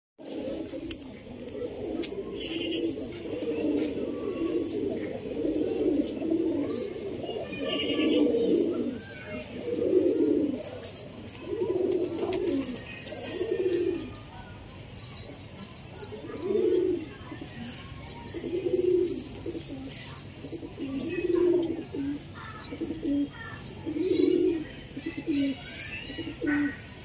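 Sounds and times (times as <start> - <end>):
pigeons cooing: 0.2 - 27.0.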